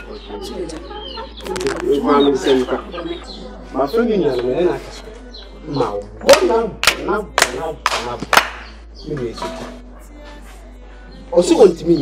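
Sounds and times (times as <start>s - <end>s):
chickens clucking: 0.0s - 6.5s, 8.7s - 10.4s.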